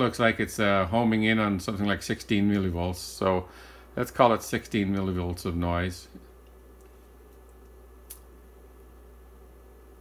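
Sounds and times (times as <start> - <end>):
faint low hum and hiss: 0.0 - 10.0
sharp click: 7.4 - 8.3.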